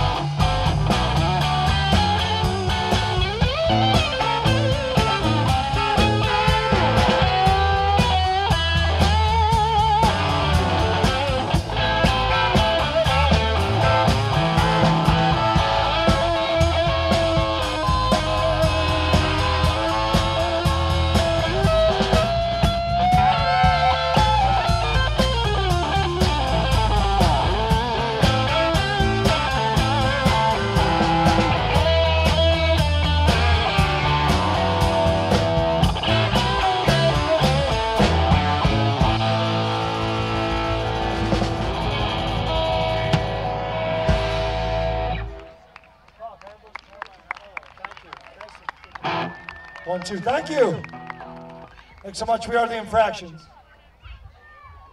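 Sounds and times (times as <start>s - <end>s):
drum beat: 0.0s - 45.4s
electric guitar bending notes: 0.0s - 45.7s, 49.0s - 49.8s
bass guitar: 0.0s - 46.0s, 48.7s - 51.9s.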